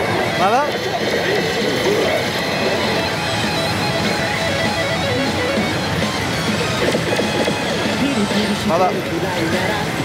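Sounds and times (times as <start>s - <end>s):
din of gaming parlour: 0.0s - 10.0s
slot machine music with guitar: 0.0s - 10.0s.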